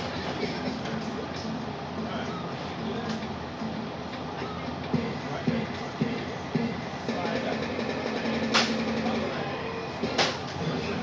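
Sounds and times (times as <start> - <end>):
room noise: 0.0 - 11.0.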